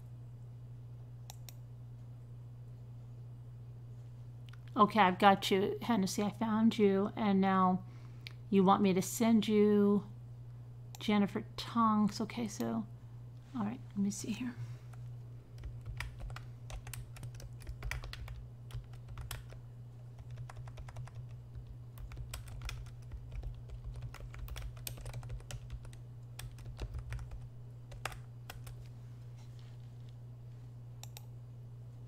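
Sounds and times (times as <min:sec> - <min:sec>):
low electrical hum: 0:00.0 - 0:32.0
typing on computer keyboard: 0:15.6 - 0:19.6, 0:20.2 - 0:28.8.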